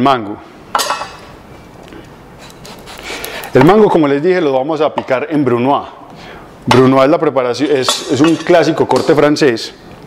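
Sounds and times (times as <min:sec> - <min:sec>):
knife scraping fruit skin: 0:02.4 - 0:03.4.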